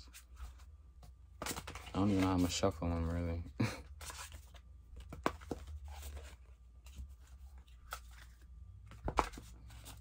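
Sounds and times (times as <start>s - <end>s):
cards being shuffled: 1.4s - 3.2s, 4.0s - 10.0s.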